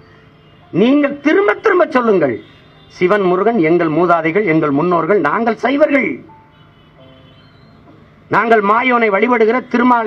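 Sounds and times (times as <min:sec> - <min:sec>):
man speaking through a microphone: 0:00.7 - 0:06.3, 0:08.3 - 0:10.0.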